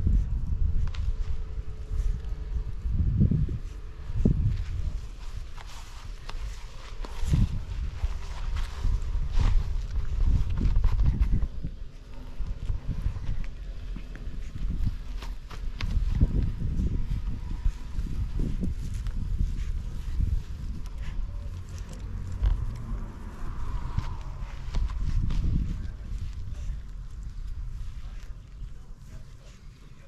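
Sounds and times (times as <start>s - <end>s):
footsteps on grass and dirt: 0.0s - 30.0s
low rumble on microphone: 0.0s - 30.0s.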